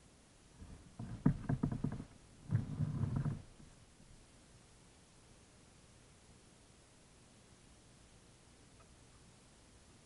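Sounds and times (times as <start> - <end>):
kayak paddle strokes in water: 0.6 - 3.6.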